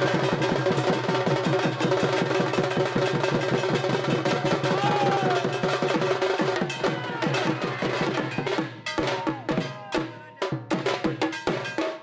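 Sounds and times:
dhol drum rhythm: 0.0 - 12.0.

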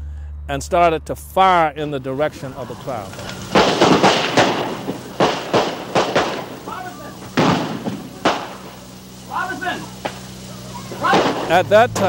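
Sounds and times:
gunshots with short echo: 3.1 - 8.8, 11.0 - 11.6.

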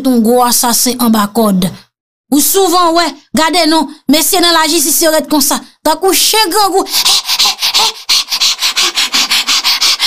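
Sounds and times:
short scratchy strokes: 6.7 - 10.0.

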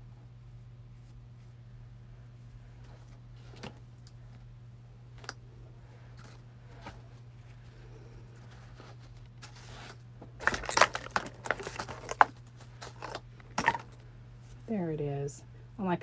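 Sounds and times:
low steady hum: 0.0 - 16.0
crinkling and scraping rustles: 6.0 - 14.7.

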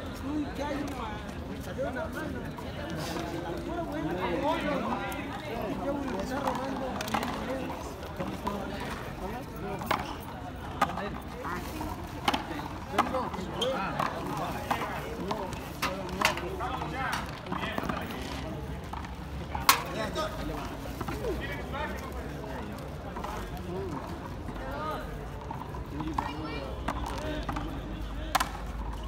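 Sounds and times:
voices chattering: 0.0 - 29.0.

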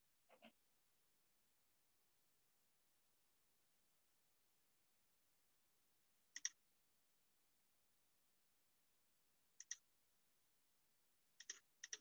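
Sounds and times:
computer mouse clicking: 6.4 - 6.6, 9.6 - 9.8, 11.4 - 12.0.

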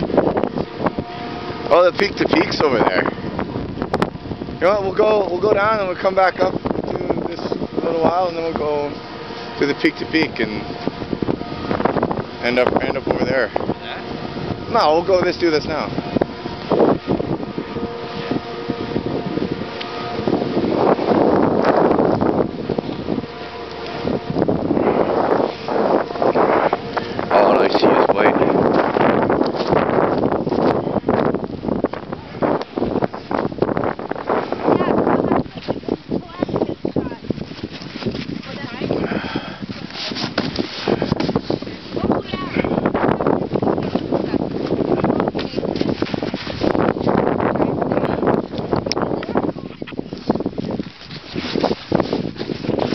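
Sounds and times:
wind buffeting microphone: 0.0 - 52.9
snowboard scraping through snow: 37.5 - 41.8, 50.3 - 52.9.

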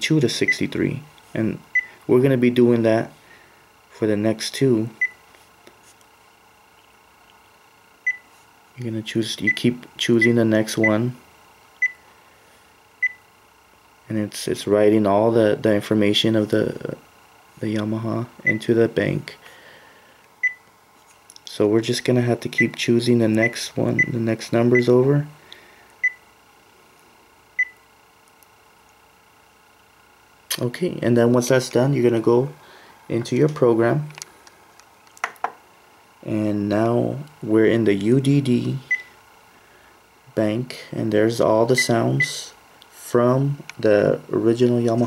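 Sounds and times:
faint steady hum: 0.0 - 45.0.

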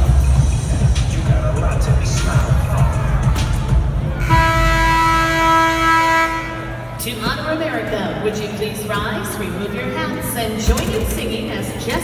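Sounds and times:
music over loudspeakers: 0.0 - 12.0
steady horn tone: 4.0 - 7.1.

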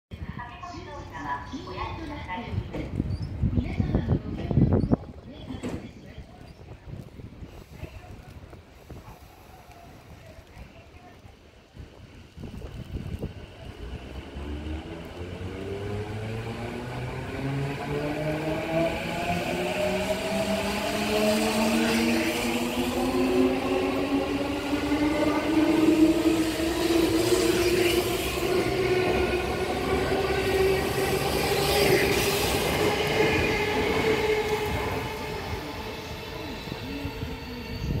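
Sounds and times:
wheels rumbling on rail: 6.5 - 38.0.

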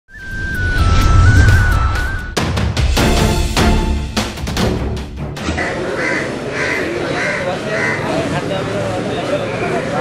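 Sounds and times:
crow cawing: 5.4 - 8.4
faint voices: 5.6 - 10.0.

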